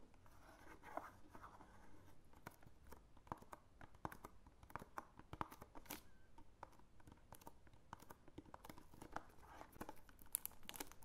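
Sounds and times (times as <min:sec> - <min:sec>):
fingertips tapping on cardboard: 0:00.4 - 0:11.0.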